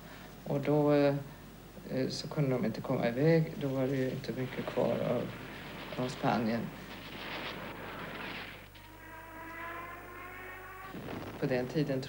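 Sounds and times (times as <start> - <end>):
speech: 0.4 - 5.3, 6.0 - 6.8, 11.4 - 12.0
steady held tone: 3.8 - 12.0.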